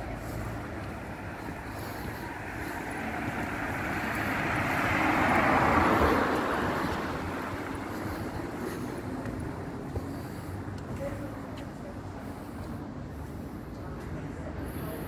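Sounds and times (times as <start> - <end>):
street background noise: 0.0 - 15.0
car passing close by: 2.3 - 8.8.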